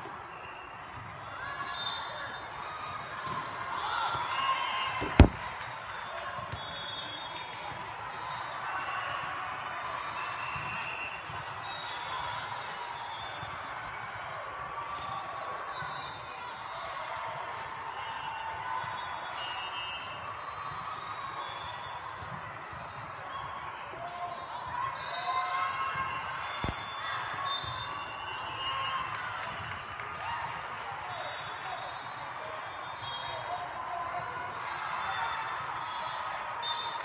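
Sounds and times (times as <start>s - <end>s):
shoe squeaks: 5.0s - 5.5s
volleyballs hit and bouncing: 5.0s - 5.6s.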